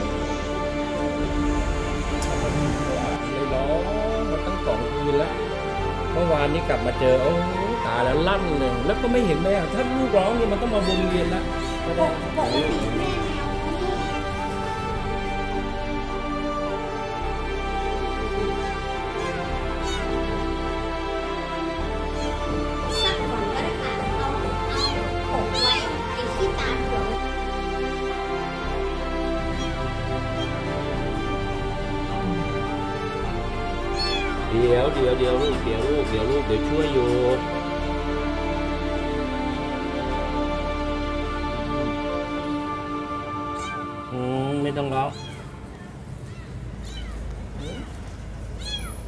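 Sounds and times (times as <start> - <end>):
soft background music: 0.0 - 49.0
kitten mewing: 10.7 - 14.7, 18.6 - 20.4, 22.2 - 27.2, 29.5 - 30.7, 33.8 - 35.7, 43.5 - 44.1, 45.1 - 49.0.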